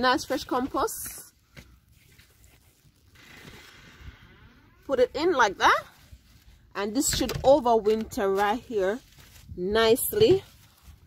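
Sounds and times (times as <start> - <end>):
rustling of potting compost: 0.0 - 11.0.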